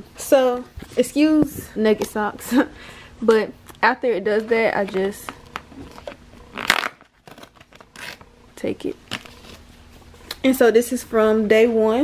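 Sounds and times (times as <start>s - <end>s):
paper tearing off printer: 5.9s - 8.3s.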